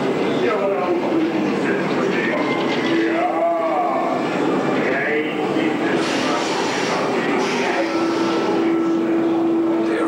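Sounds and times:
constant rushing noise: 0.0 - 10.0.

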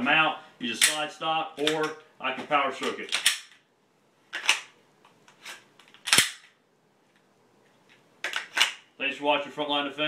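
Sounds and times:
pistol slide metallic clicks: 2.8 - 3.6, 5.4 - 6.6.

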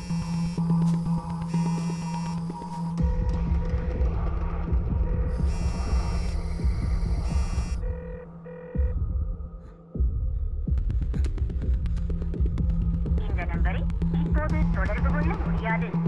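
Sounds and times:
high electronic tones: 0.0 - 3.3, 5.3 - 9.0
low repeating pulse with hum: 0.0 - 16.0.

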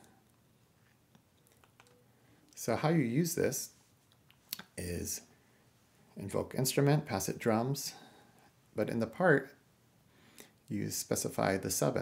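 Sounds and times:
faint clicks: 0.3 - 2.6.

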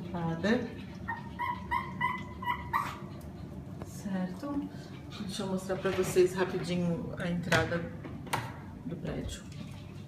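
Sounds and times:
dog whining: 1.0 - 3.4.

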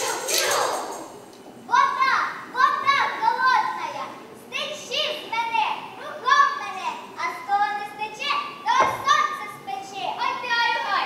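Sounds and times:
girls chanting: 0.0 - 1.1.

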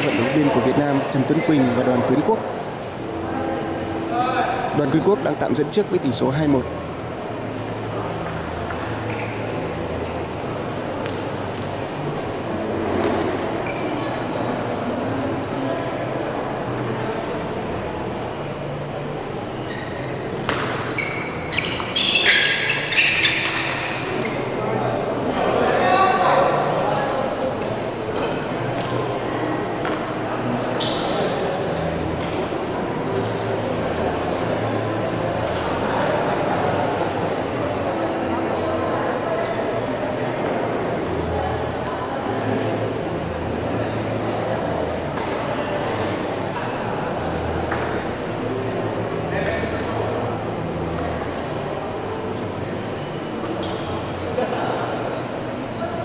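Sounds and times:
murmur of voices in echoing hall: 0.0 - 56.0.

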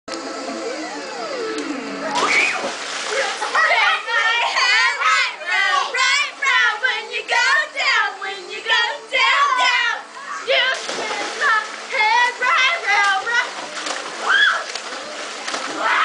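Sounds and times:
water splashing in pool: 2.1 - 4.1, 10.5 - 16.0.

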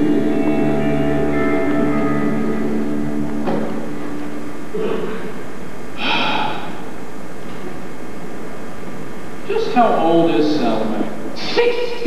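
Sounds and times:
orchestra holding sustained chords: 0.0 - 5.3
steady low hum: 0.0 - 12.0.

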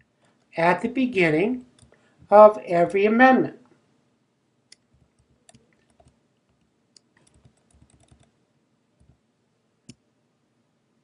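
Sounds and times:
computer keyboard clicks: 4.7 - 8.3.

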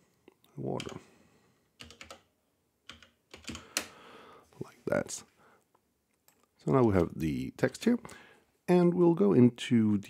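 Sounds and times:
computer keyboard keystrokes: 0.8 - 1.0, 1.8 - 2.3, 2.9 - 3.9.

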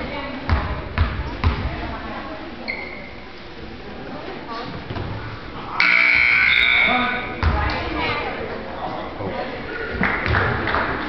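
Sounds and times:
crowd chatter: 0.0 - 11.0
basketball bouncing on gym floor: 0.5 - 1.8, 7.4 - 7.9
short high squeak: 2.7 - 3.1, 6.1 - 7.2.

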